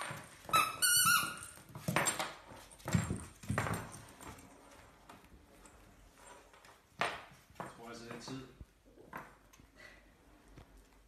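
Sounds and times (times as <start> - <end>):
puppy scuffling: 0.0 - 8.8
squeaky toy squeaks: 0.5 - 1.6.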